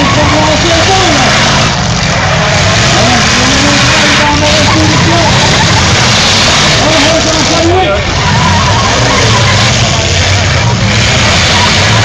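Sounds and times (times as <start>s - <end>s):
car engines revving hard: 0.0s - 12.0s
crowd shouting: 0.0s - 12.0s.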